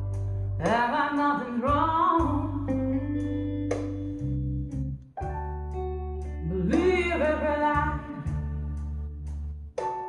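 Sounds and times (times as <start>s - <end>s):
bass line: 0.0s - 10.0s
blues guitar over loudspeakers: 0.0s - 10.0s.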